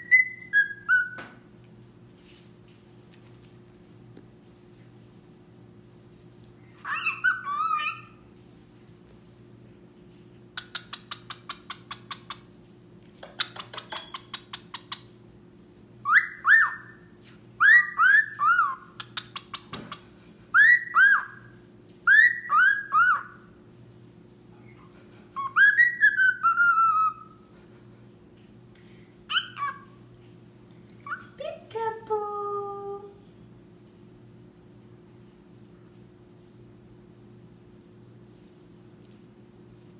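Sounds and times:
cockatiel whistling: 0.0s - 1.3s, 6.8s - 8.2s, 16.0s - 17.0s, 17.6s - 19.0s, 20.6s - 23.4s, 25.4s - 27.4s, 29.3s - 29.9s.

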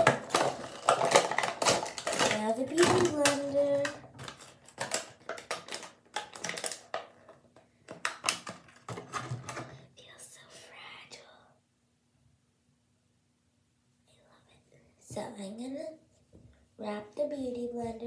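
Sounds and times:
plastic packaging clicking and crackling: 0.0s - 9.8s.

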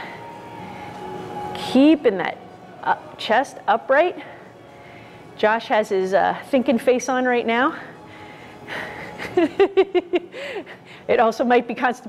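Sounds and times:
woman laughing: 8.8s - 10.8s.

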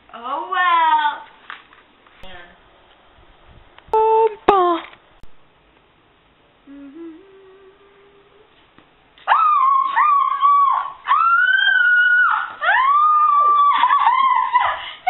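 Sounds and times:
faint low hum: 2.0s - 15.0s
girl screaming: 9.3s - 14.9s.

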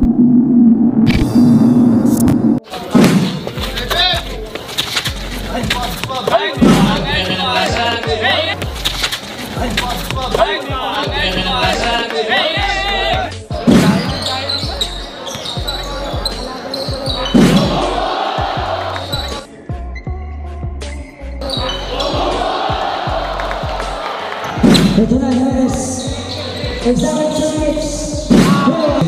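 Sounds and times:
voices in a large hall: 2.6s - 29.0s
music with singing voice: 3.5s - 29.0s.

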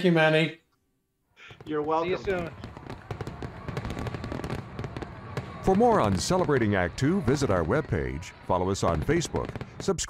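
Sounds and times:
fireworks crackling and popping: 1.4s - 10.0s.

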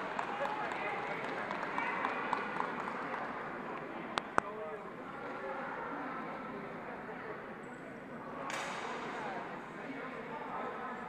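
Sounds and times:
crowd chatter in large hall: 0.0s - 11.0s.

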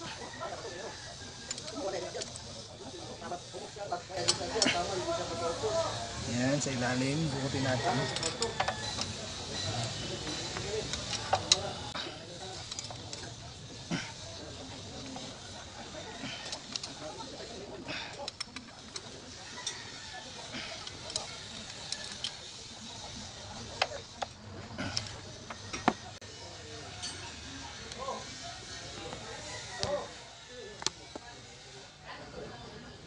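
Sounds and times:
hand tools clicking on metal: 1.4s - 2.6s, 4.2s - 5.0s, 7.2s - 14.2s, 15.0s - 22.5s.

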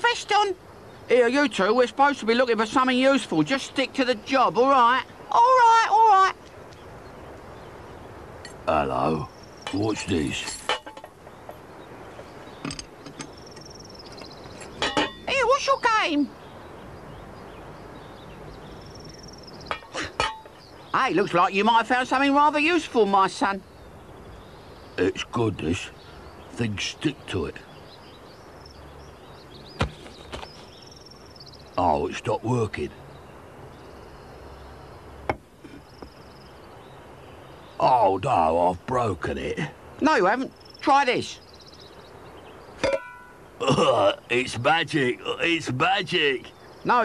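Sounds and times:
cricket chirring: 0.0s - 47.0s
faint countryside ambience: 0.0s - 47.0s.

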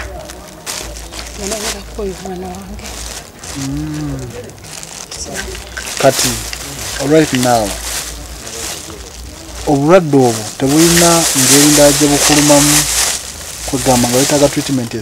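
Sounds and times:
people talking: 0.0s - 13.0s, 13.6s - 15.0s.

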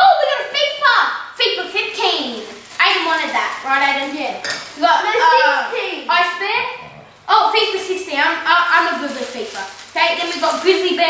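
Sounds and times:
children chattering: 1.8s - 11.0s
packaging clinking and crinkling: 2.3s - 5.1s, 8.8s - 11.0s.

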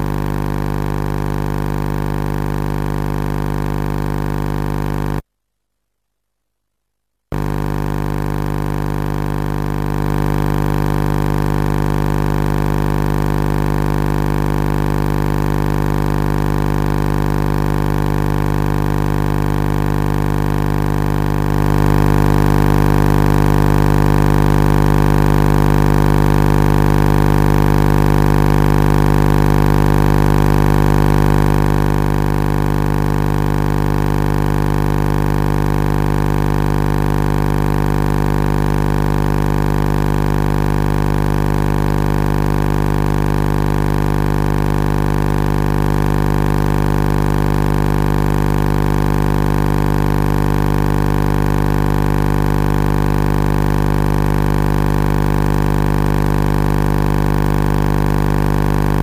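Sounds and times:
loud steady droning hum: 7.3s - 10.5s.

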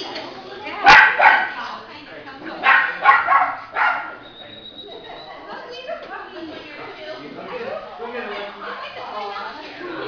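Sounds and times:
people talking in background: 0.0s - 10.0s
puppy barking: 0.8s - 1.6s, 2.6s - 4.2s.

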